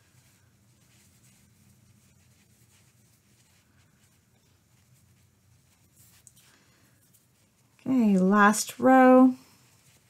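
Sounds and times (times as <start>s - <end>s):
low steady hum: 0.0s - 10.0s
yarn and crochet hook rustling: 0.0s - 10.0s.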